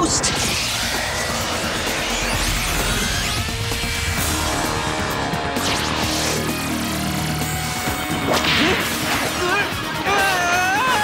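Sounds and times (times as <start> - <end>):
warbling tones: 0.0 - 9.3.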